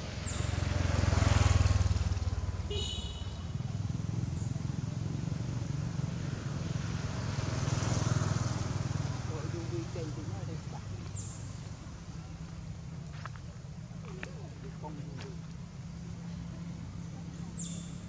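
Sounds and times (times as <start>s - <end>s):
passing vehicles rumbling: 0.0s - 18.0s.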